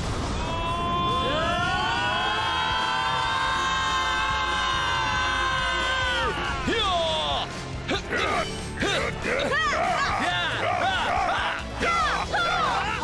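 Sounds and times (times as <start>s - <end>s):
voices yelling battle cry: 0.5s - 13.0s.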